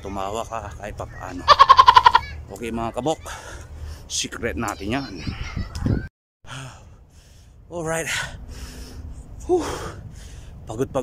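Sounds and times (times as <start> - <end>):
man breathing heavily: 3.2 - 4.1, 6.5 - 10.7.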